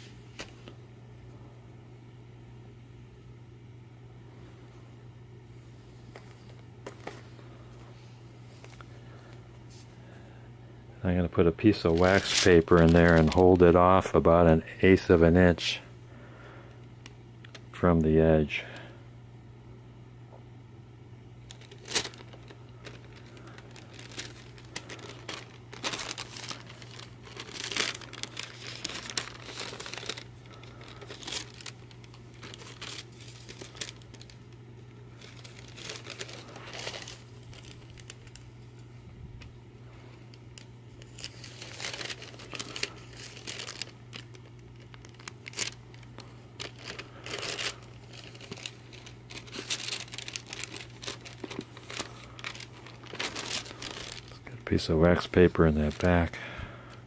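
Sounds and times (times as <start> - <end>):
steady low hum: 0.0 - 57.0
wax paper crinkling: 5.9 - 10.2, 11.3 - 15.6, 21.4 - 56.6.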